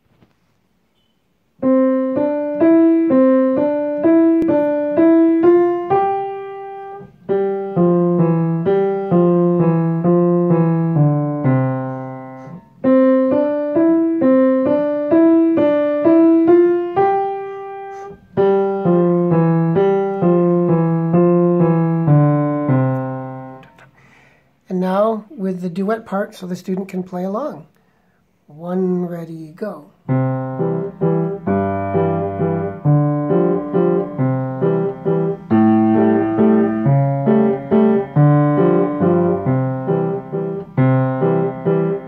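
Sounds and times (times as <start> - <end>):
piano melody: 1.4 - 23.9, 29.6 - 42.0.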